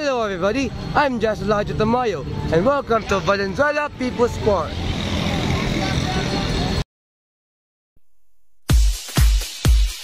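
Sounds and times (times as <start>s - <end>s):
low rumble of traffic: 0.0s - 6.8s.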